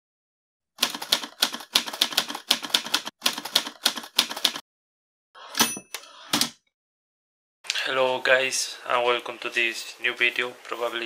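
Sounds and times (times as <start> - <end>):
typewriter bell ding: 5.6 - 6.0.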